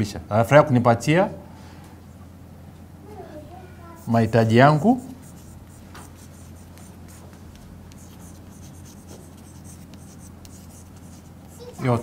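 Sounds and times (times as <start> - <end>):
steady low hum: 0.0 - 12.0
chalk scratching on blackboard: 4.0 - 12.0.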